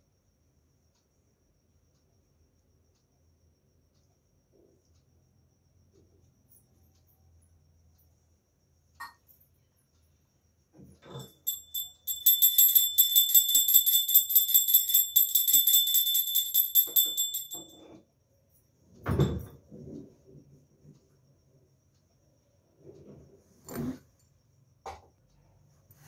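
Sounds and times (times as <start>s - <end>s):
small hand bell ringing: 11.1s - 18.0s.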